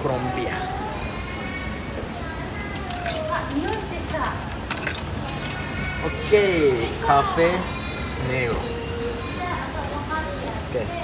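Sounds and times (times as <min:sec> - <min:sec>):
coins clicking into slot: 0:02.9 - 0:05.6.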